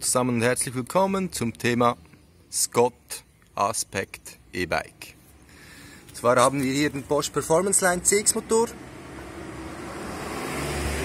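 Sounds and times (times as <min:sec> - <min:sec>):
road vehicle passing: 0:05.8 - 0:11.0.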